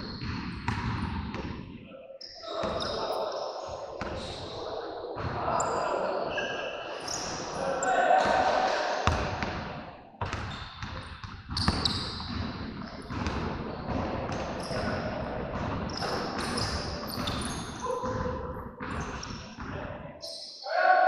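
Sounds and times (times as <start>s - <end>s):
people talking and calling: 1.9s - 9.2s.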